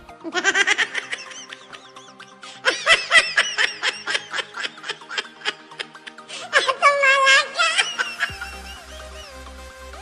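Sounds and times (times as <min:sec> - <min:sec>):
person laughing rhythmically: 0:00.0 - 0:09.6
faint background music: 0:00.0 - 0:10.0.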